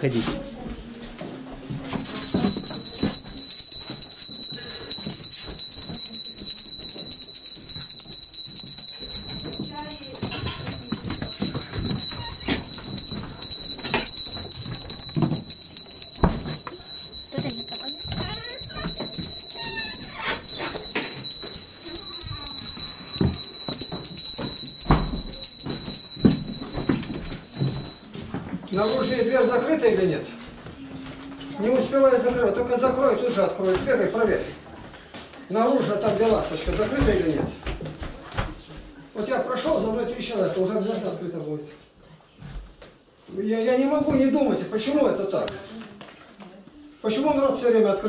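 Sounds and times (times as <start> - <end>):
small hand bell ringing: 1.9 - 29.8.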